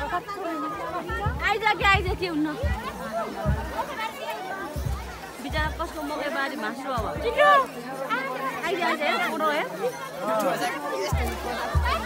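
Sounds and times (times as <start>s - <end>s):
crowd chattering and calling: 0.0s - 12.0s
low repeating thump: 1.0s - 4.1s, 4.7s - 6.2s, 7.0s - 7.4s.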